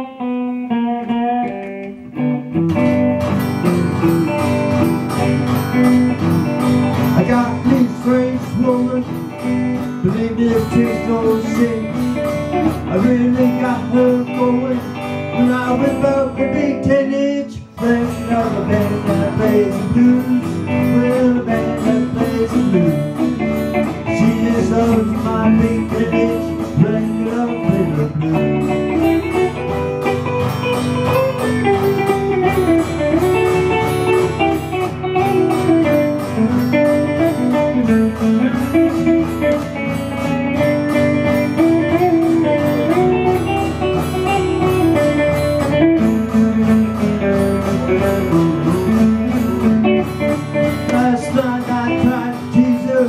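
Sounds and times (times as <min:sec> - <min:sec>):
electric guitar blues melody: 0:00.0 - 0:53.0.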